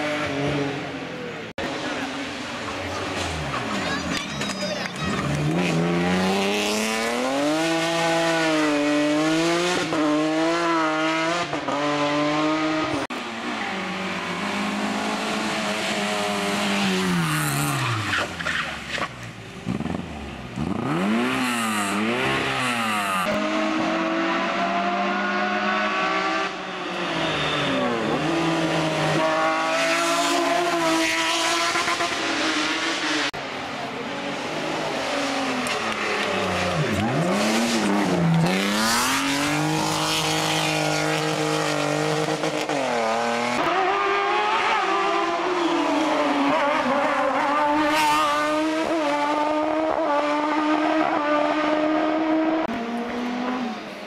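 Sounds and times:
race car engines revving: 0:00.0 - 0:54.0
tyre squeal: 0:26.8 - 0:28.6.

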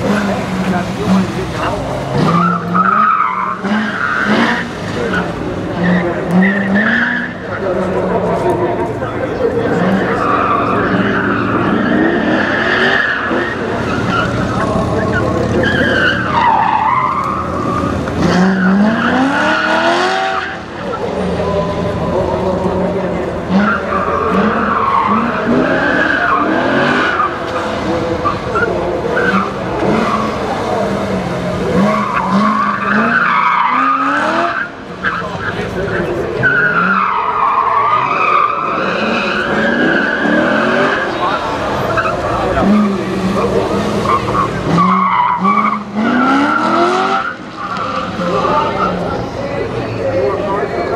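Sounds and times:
car engine revving: 0:00.0 - 0:50.9
tires squealing: 0:00.0 - 0:50.9.

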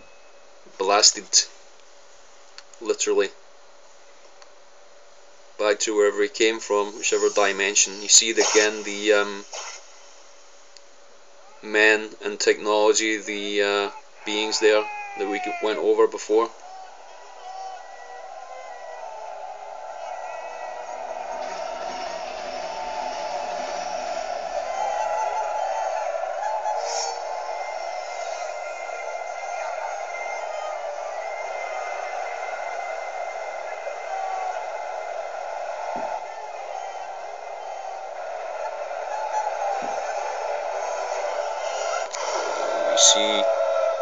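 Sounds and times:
film soundtrack through laptop speakers: 0:06.8 - 0:11.6, 0:13.8 - 0:44.0.

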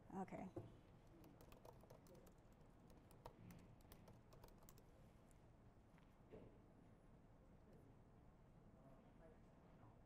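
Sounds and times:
typing on laptop keyboard: 0:01.1 - 0:04.9.

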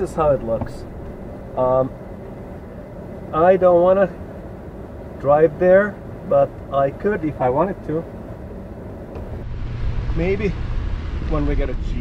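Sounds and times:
vehicle driving on dirt track: 0:00.0 - 0:02.1, 0:09.1 - 0:12.0
vehicle engine idling: 0:00.0 - 0:12.0.

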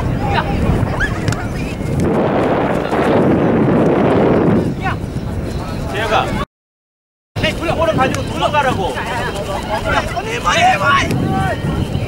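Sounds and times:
wind blowing on microphone: 0:00.0 - 0:06.4, 0:07.4 - 0:12.0
players shouting: 0:07.5 - 0:11.7.

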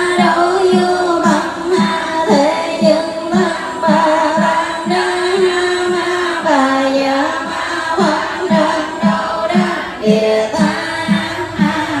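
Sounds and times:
voices chanting together: 0:00.0 - 0:12.0.

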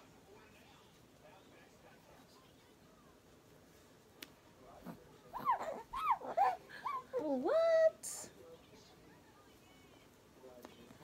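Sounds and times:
baby squealing: 0:05.4 - 0:07.0.

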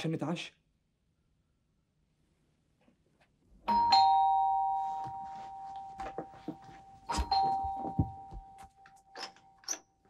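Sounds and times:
ding-dong doorbell chime: 0:03.7 - 0:09.4.

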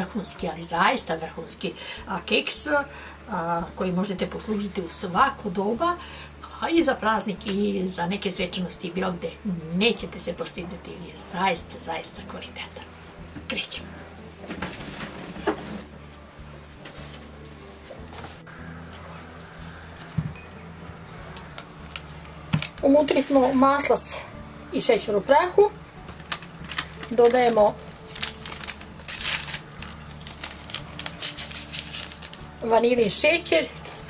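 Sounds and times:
office chair movement: 0:14.4 - 0:16.0
paper packet crinkling: 0:26.1 - 0:34.0.

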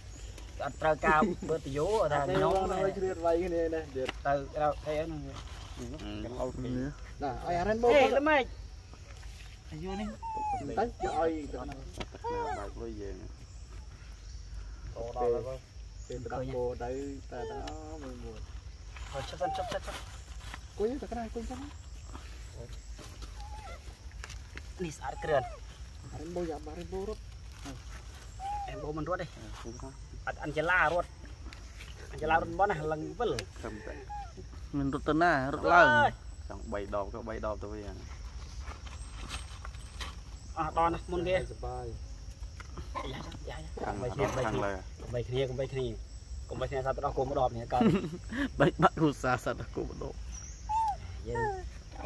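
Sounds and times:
high-pitched insect drone: 0:00.0 - 0:52.0
monkey call: 0:09.6 - 0:14.3, 0:15.1 - 0:20.4, 0:21.4 - 0:24.2, 0:24.8 - 0:31.1, 0:32.3 - 0:36.2, 0:50.0 - 0:52.0.

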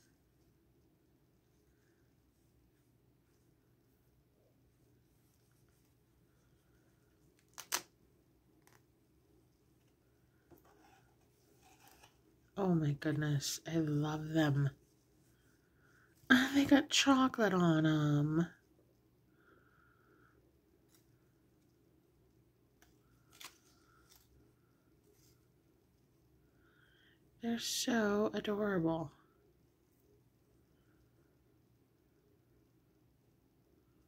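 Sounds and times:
plush toy being handled: 0:00.0 - 0:12.6.

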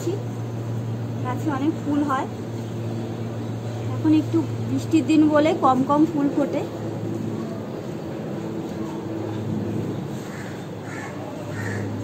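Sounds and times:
steady low hum: 0:00.0 - 0:12.0
bird calling: 0:10.2 - 0:12.0.

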